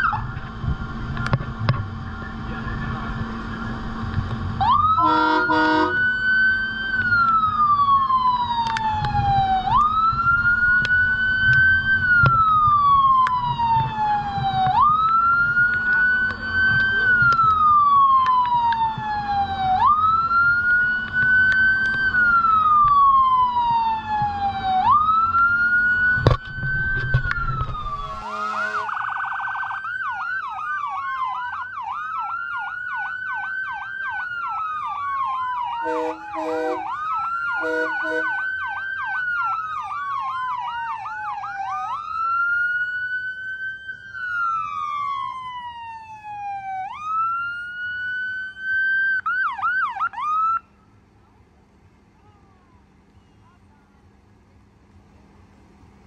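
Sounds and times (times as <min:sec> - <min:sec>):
electronic siren wail and yelp: 0:00.0 - 0:00.3, 0:04.6 - 0:50.7
short horn blasts: 0:05.0 - 0:06.0, 0:27.9 - 0:28.9, 0:35.8 - 0:37.0, 0:37.6 - 0:38.4.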